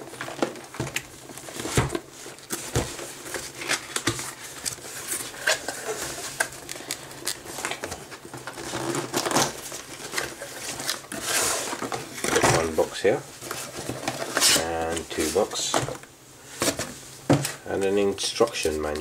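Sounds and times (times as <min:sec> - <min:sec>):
cardboard flaps rustling: 0:00.0 - 0:19.0
cardboard boxes shifting: 0:07.5 - 0:17.6.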